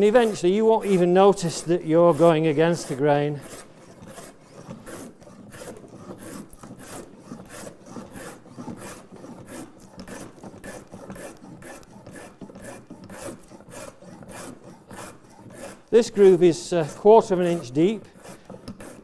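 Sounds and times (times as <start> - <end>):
plane scraping wood: 0.0 - 19.0.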